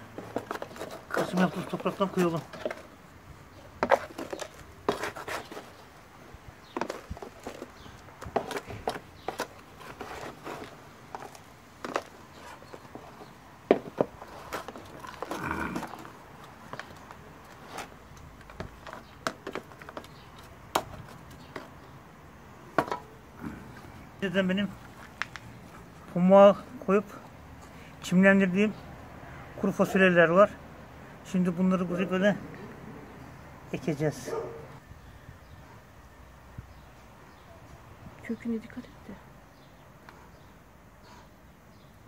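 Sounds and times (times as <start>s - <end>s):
metal scoop scraping soil and plastic: 0.0s - 3.0s, 3.6s - 6.0s, 6.6s - 21.8s.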